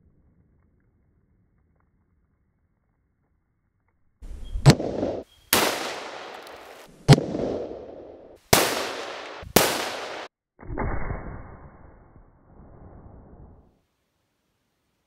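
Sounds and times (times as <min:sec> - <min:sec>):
rifle shots with echo: 0:04.6 - 0:10.3.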